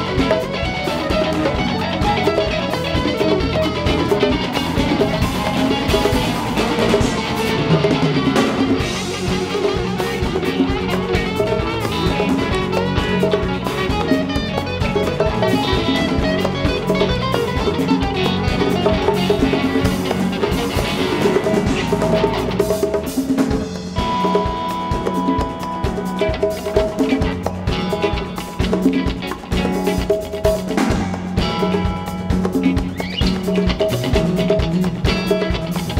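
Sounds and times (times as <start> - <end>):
live band playing: 0.0 - 35.9.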